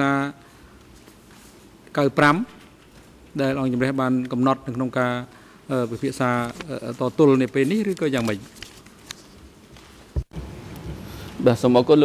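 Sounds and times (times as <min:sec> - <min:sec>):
man talking into a microphone: 0:11.4 - 0:12.0.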